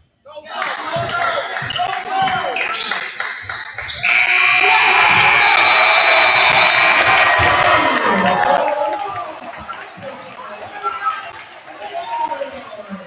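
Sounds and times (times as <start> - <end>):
crowd noise: 0.8 - 13.0
scoreboard horn: 4.0 - 7.4.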